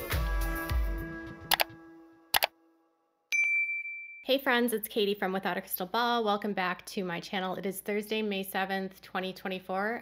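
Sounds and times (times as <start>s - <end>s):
notification bell ding: 3.3s - 4.3s.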